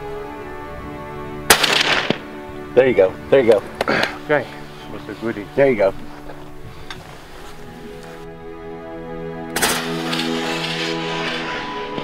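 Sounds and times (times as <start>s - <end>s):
quiet background music: 0.0s - 12.0s
rifle shot: 1.5s - 2.3s, 9.5s - 11.4s.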